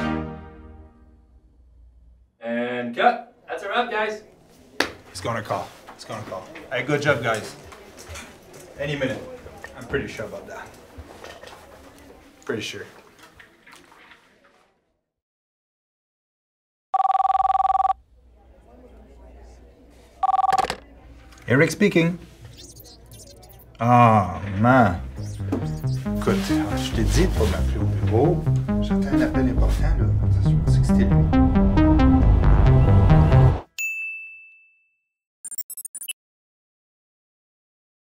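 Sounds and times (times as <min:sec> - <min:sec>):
telephone ringing two-tone: 0:17.0 - 0:18.0, 0:20.2 - 0:20.8
upbeat electronic music: 0:22.5 - 0:23.7, 0:24.6 - 0:33.7
bright ding: 0:33.8 - 0:35.0.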